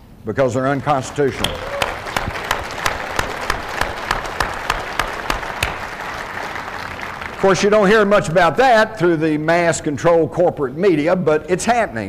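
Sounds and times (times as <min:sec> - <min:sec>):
audience applauding: 0:00.8 - 0:08.4.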